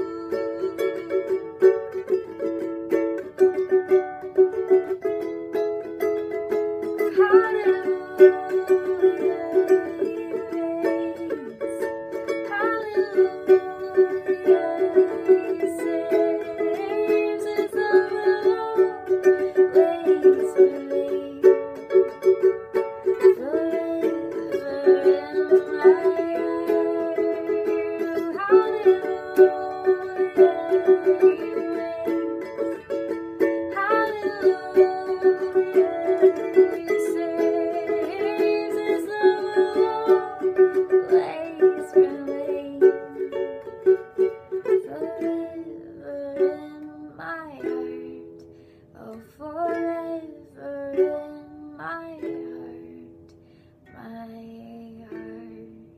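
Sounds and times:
woman singing: 0:00.0 - 0:05.0, 0:05.9 - 0:53.3, 0:53.9 - 0:55.9
ukulele strumming: 0:00.0 - 0:55.9.

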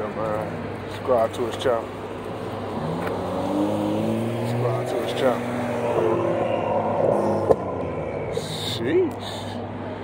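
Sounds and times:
car engine idling: 0:04.6 - 0:10.0.

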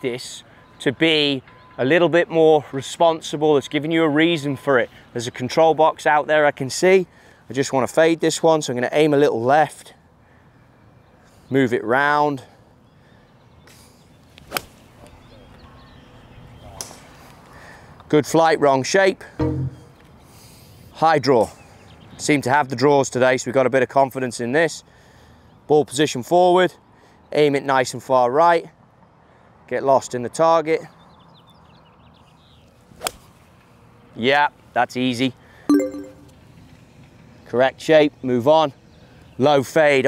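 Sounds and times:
golf club swish: 0:14.5 - 0:14.7.

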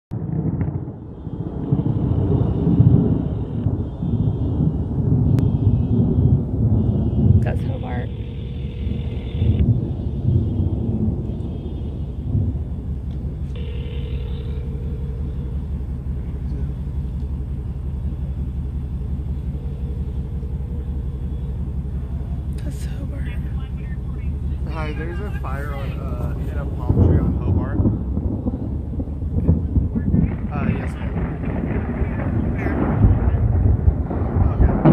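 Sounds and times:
thunder rumbling: 0:00.1 - 0:34.9.

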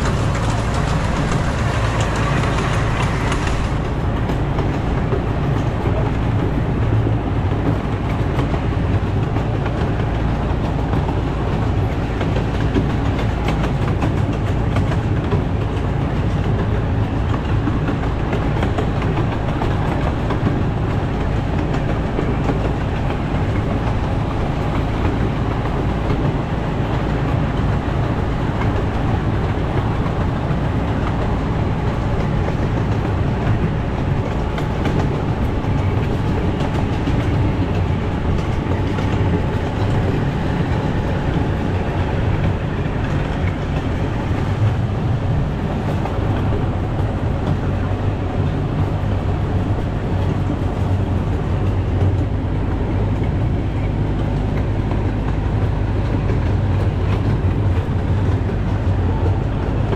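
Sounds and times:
clicks over rail joints: 0:00.0 - 0:59.9
wheels rumbling on rail: 0:00.0 - 0:59.9.

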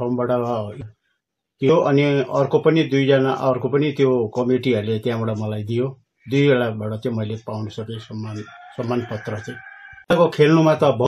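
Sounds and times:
man speaking: 0:00.0 - 0:00.9, 0:01.6 - 0:11.0
rooster crowing: 0:08.0 - 0:10.1.

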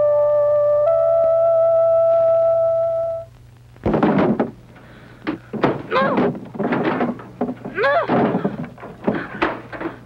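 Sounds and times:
short knocks: 0:03.8 - 0:10.0
person wailing: 0:05.8 - 0:06.3, 0:07.7 - 0:08.4.

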